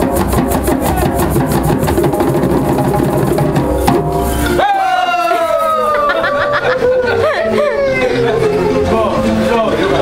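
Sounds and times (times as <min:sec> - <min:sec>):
djembe hand drums playing: 0:00.0 - 0:06.5.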